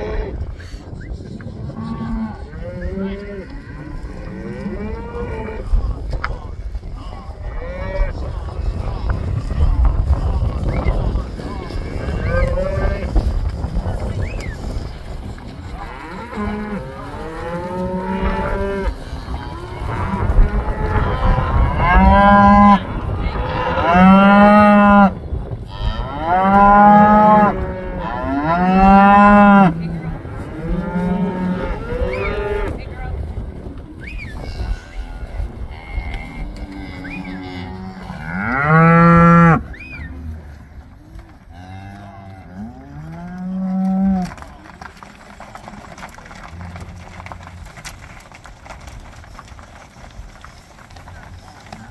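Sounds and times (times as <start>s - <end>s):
cows mooing: 0.0s - 0.4s, 1.7s - 5.8s, 15.6s - 25.1s, 25.7s - 32.8s, 35.7s - 40.7s.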